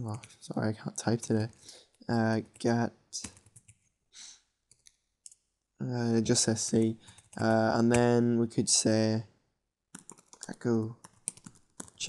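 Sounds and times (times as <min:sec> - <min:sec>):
keyboard keystrokes: 0:10.0 - 0:12.0.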